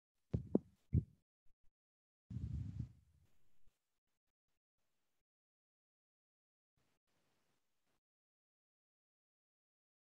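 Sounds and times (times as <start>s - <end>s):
soft low thumps: 0.4s - 1.1s, 2.3s - 2.9s.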